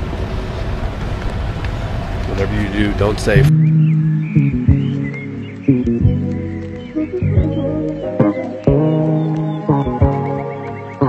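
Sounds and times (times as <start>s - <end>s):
street traffic going by: 0.0s - 11.0s.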